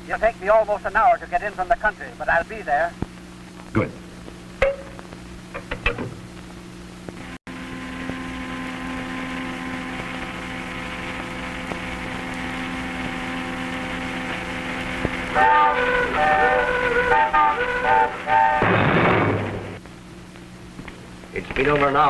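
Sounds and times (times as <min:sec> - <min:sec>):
car horn blasts: 0:15.3 - 0:19.6.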